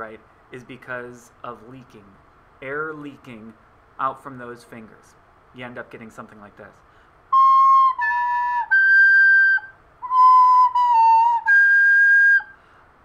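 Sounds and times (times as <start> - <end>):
recorder playing with shrill squeak: 7.4 - 12.5.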